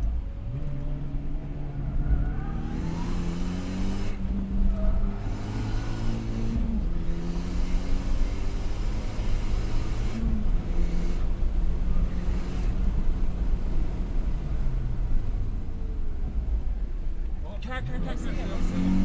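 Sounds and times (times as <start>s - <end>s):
car engine accelerating: 0.0s - 19.0s
road and wind noise: 0.0s - 19.0s.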